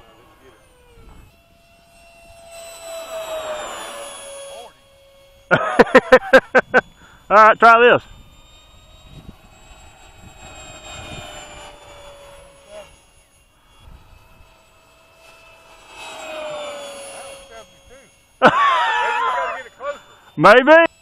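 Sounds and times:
electric ducted fan whine: 0:00.0 - 0:21.0.

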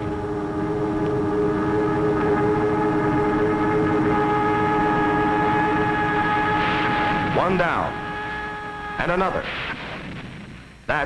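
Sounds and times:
held horn-like chord: 0:00.0 - 0:09.4
low rumble: 0:00.0 - 0:10.8.

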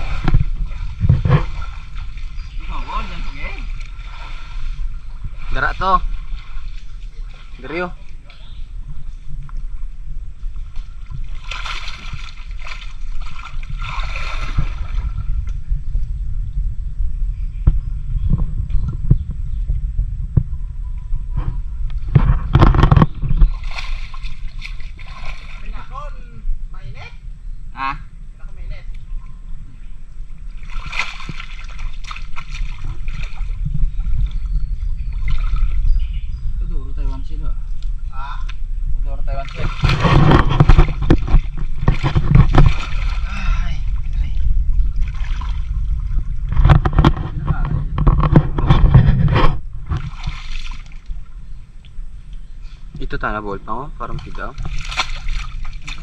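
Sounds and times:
water sloshing and splashing: 0:00.0 - 0:15.5, 0:22.0 - 0:26.0, 0:30.4 - 0:36.1, 0:39.3 - 0:52.0, 0:54.0 - 0:56.0
steady low rumble: 0:00.0 - 0:56.0.

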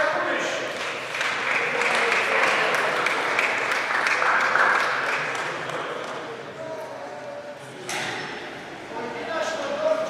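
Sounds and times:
crowd applauding: 0:00.8 - 0:06.3.

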